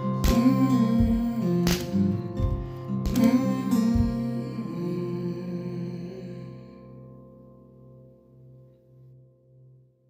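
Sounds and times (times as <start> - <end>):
classical guitar strummed: 0.0 - 9.6.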